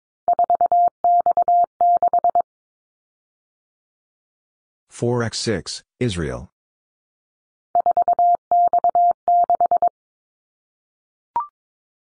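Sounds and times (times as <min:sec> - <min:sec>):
morse code beeps: 0:00.3 - 0:02.4, 0:07.8 - 0:09.9.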